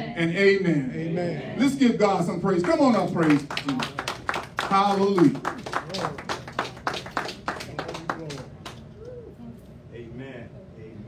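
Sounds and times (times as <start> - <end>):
rhythmic clapping: 2.5 - 8.9.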